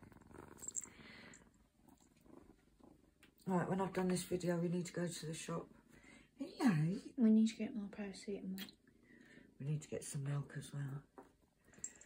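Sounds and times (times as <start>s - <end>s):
kitten purring: 0.0s - 5.5s.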